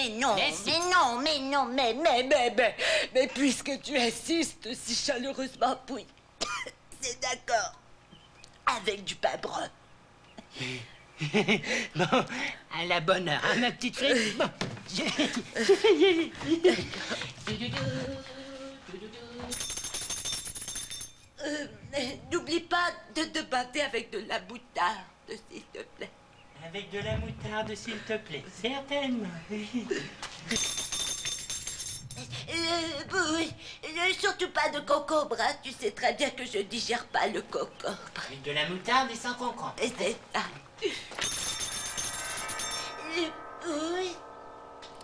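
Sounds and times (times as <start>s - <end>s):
bell-like ringing chime: 19.5s - 21.3s, 41.2s - 45.0s
rapid metallic jingling: 19.5s - 21.3s, 30.5s - 32.3s, 41.2s - 43.6s.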